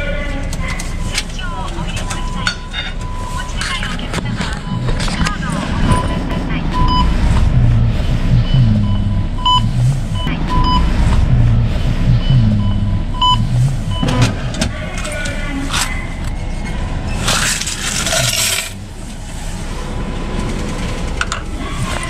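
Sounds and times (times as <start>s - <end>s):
short electronic beeps: 0.9s - 14.2s.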